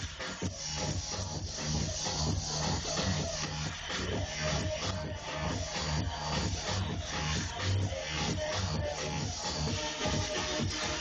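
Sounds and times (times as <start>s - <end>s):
electronic dance music: 0.0s - 11.0s
pounding bass beat: 0.0s - 11.0s.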